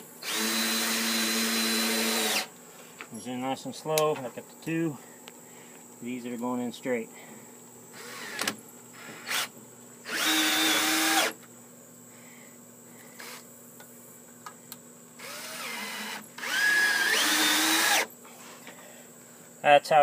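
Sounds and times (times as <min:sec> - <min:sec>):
cordless drill driving screws: 0:00.2 - 0:02.5, 0:08.0 - 0:11.4, 0:15.2 - 0:18.1.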